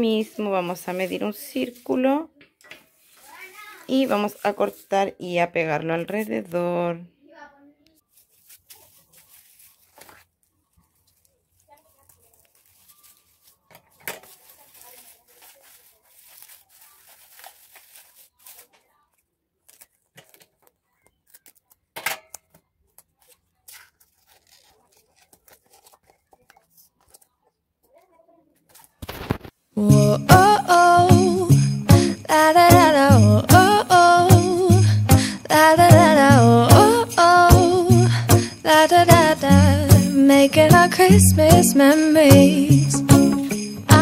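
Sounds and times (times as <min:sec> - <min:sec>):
tinsel rustling and crinkling: 0:00.1 - 0:02.2, 0:02.8 - 0:05.1, 0:08.0 - 0:21.8, 0:22.8 - 0:44.0
tape tearing off roll: 0:23.7 - 0:26.1, 0:28.7 - 0:29.6.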